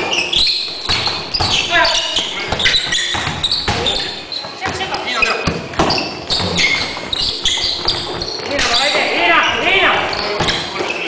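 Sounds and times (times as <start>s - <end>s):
basketball bouncing on hardwood: 2.5s - 4.0s.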